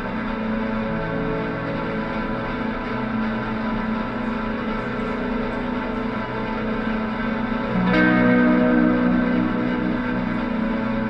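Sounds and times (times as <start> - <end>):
band playing ambient drone: 0.0 - 11.0.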